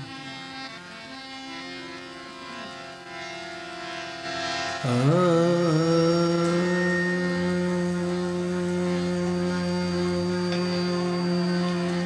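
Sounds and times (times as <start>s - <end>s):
steady musical drone: 0.0s - 12.0s.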